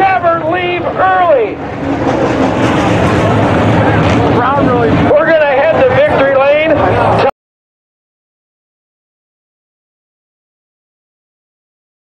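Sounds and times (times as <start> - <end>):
race car engines: 0.0 - 7.3
loudspeaker voice: 4.2 - 7.3.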